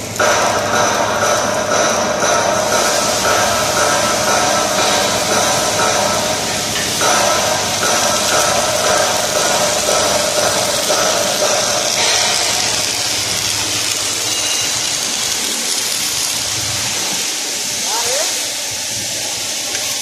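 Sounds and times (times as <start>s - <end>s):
machine hum: 0.0s - 17.8s
arc welding hiss: 0.0s - 20.0s.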